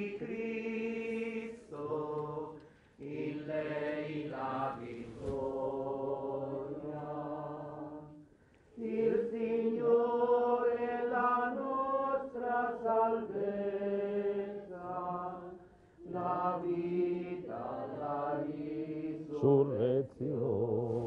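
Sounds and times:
liturgical hymn singing: 0.0s - 21.0s.

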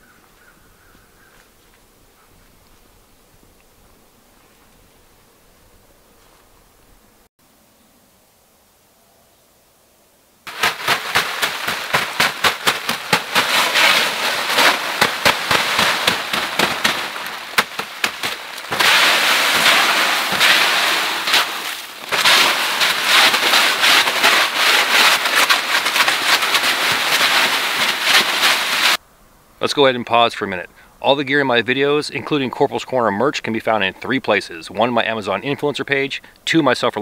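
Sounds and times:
stick scraping snow off tarp: 10.5s - 29.0s.

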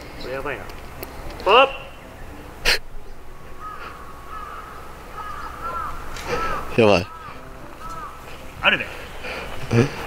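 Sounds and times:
crows cawing: 2.7s - 9.6s.

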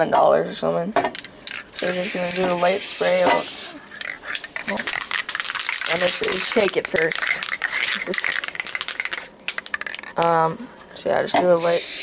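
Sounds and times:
aerosol can being shaken: 1.4s - 10.3s, 11.6s - 12.0s.

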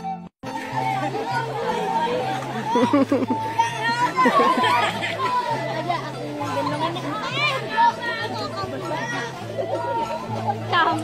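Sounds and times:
people chattering: 0.4s - 11.0s
person laughing: 2.7s - 3.4s.

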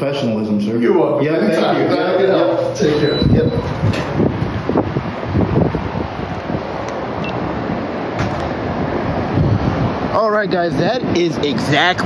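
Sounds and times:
city street traffic: 0.0s - 12.0s
car passing: 1.6s - 12.0s
wind buffeting microphone: 2.8s - 12.0s.

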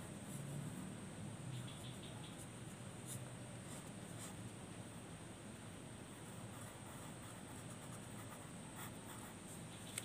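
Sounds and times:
faint low hum: 0.0s - 10.0s
pencil scratching on paper: 6.1s - 10.0s.

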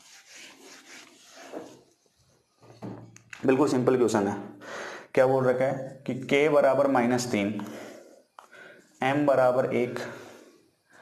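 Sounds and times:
duster rubbing on whiteboard: 0.0s - 1.9s.

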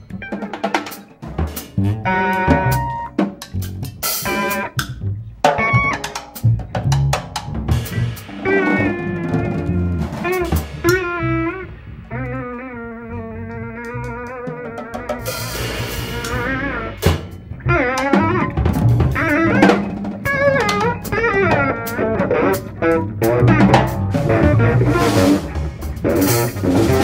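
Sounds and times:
snare and cymbal hits: 0.0s - 12.6s, 15.0s - 27.0s
electric guitar: 0.0s - 27.0s
plucked double bass: 1.2s - 27.0s.

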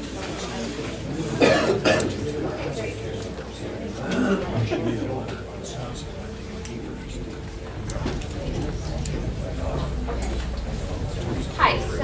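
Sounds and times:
person coughing: 1.4s - 2.2s, 4.0s - 4.7s.

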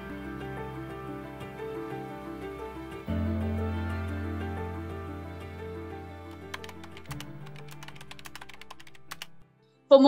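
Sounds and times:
quick light clicking rhythm: 6.3s - 9.4s.

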